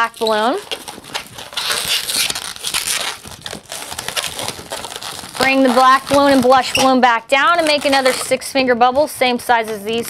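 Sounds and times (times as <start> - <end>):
balloons rubbing and twisting: 0.0 - 10.0.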